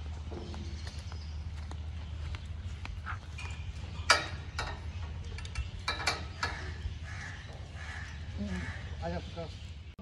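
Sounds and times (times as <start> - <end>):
faint bird calls: 5.1 - 9.6.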